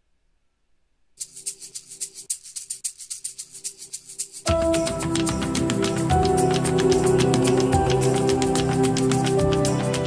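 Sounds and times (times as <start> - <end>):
fast even percussion beat: 1.2 - 10.0.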